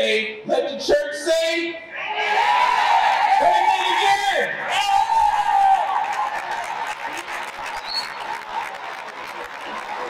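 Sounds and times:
audience clapping and cheering: 4.7s - 10.0s.

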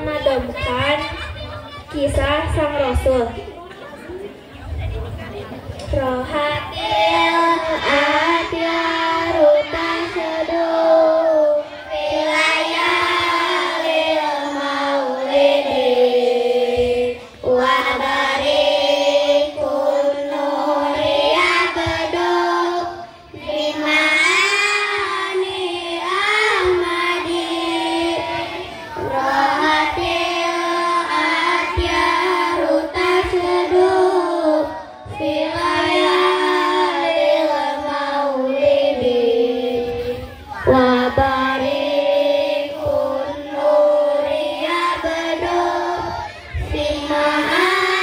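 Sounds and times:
children singing in unison: 5.8s - 48.0s.

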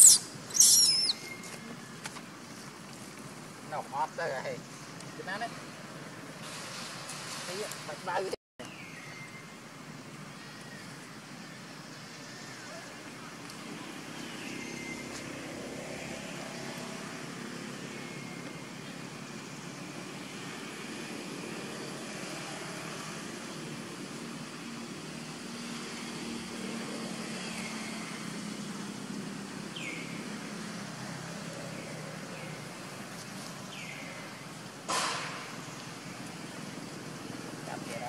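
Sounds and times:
high falling chirps: 0.0s - 1.6s
distant traffic drone: 0.0s - 38.0s.

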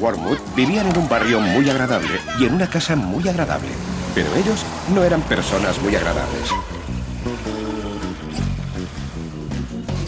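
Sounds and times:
low bass: 0.0s - 10.0s.

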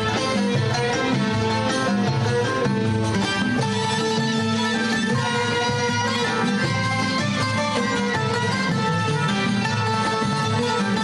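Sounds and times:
plucked oud and qanun: 0.0s - 11.0s.

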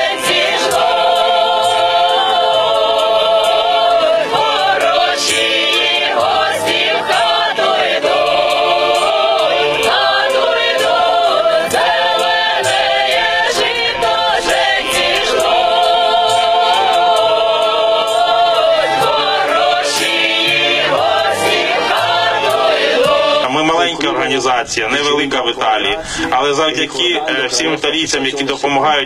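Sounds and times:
choir singing: 0.0s - 29.0s.

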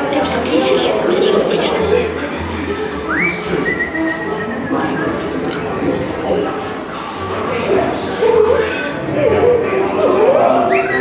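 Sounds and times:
ride music: 0.0s - 11.0s
voices: 0.0s - 11.0s
recorded whistle: 3.1s - 5.4s, 10.6s - 11.0s.

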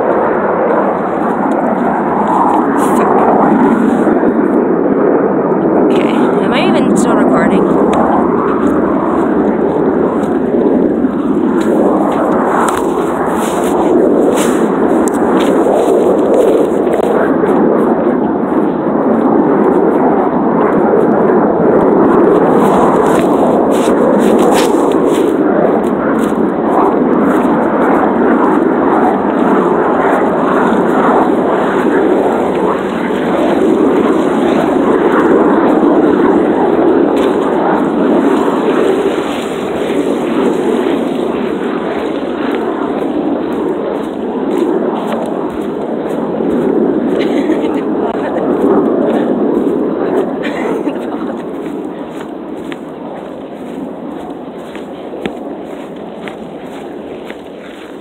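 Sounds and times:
fighter jets roaring overhead: 0.0s - 58.0s.

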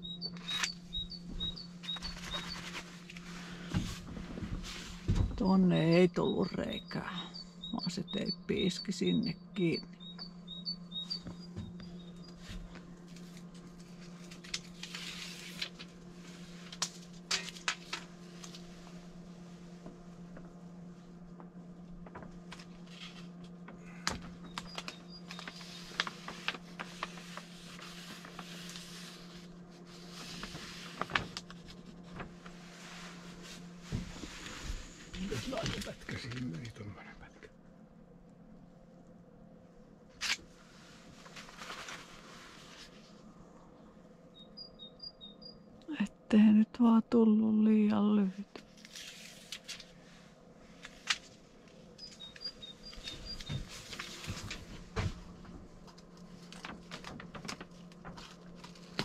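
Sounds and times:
steady low hum: 0.0s - 59.0s
foil rustling and crinkling: 1.8s - 5.2s, 12.3s - 19.7s, 21.9s - 36.6s, 40.2s - 43.2s, 48.6s - 50.1s, 50.7s - 59.0s
person's voice: 5.4s - 9.9s, 45.9s - 48.4s.

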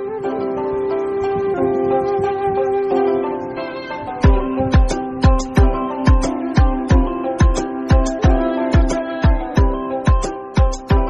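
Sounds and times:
music with long held notes: 0.0s - 11.0s.

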